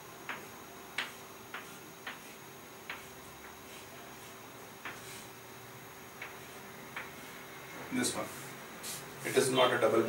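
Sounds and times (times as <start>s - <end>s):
chalk tapping on a chalkboard: 0.3s - 5.3s, 6.1s - 7.4s.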